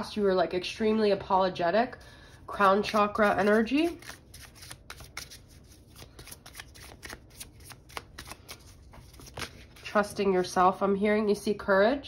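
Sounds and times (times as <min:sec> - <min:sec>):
cards being shuffled: 0:02.5 - 0:10.5.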